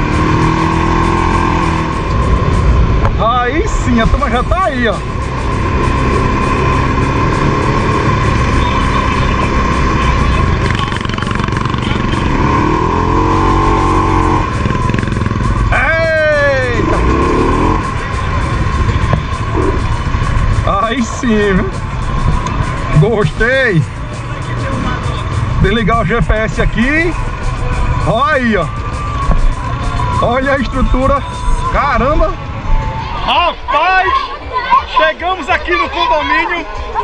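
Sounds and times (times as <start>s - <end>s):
quad bike engine running: 0.0s - 3.2s, 4.6s - 26.3s
steady whine: 1.7s - 24.1s.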